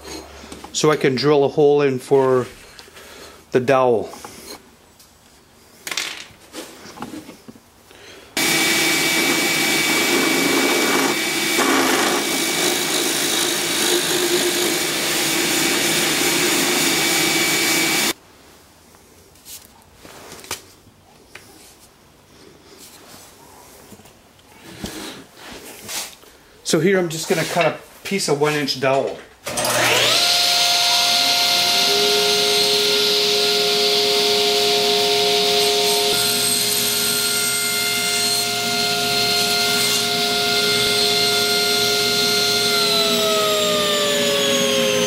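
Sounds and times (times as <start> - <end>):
drill press motor whine: 8.4 - 18.2, 29.5 - 45.0.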